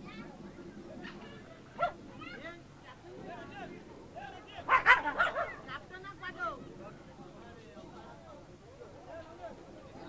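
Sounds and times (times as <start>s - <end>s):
dog barking and yipping: 4.7s - 5.6s.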